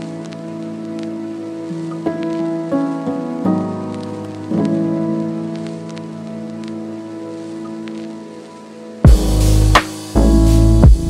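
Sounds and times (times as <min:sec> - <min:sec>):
soft music of sustained chords: 0:00.0 - 0:11.0.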